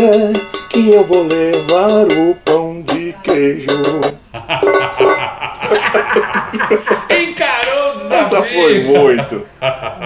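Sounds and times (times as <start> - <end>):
man and woman laughing: 4.2 - 7.4, 8.6 - 10.0.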